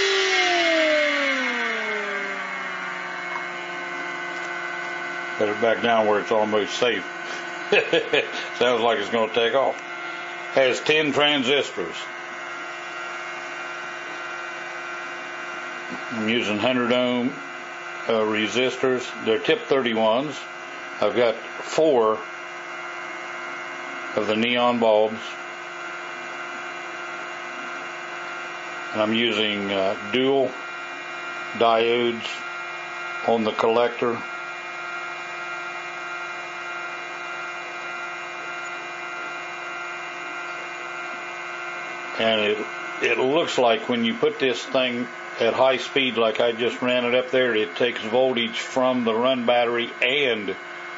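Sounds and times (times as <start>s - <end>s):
pulse motor humming: 0.0s - 50.9s.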